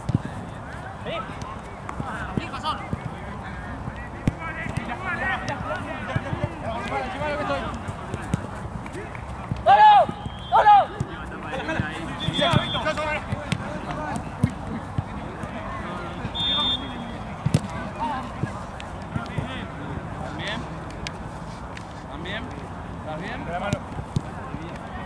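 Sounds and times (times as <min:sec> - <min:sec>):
players and spectators shouting: 0:04.4 - 0:08.3, 0:08.9 - 0:14.3
loud shouts: 0:09.6 - 0:11.0.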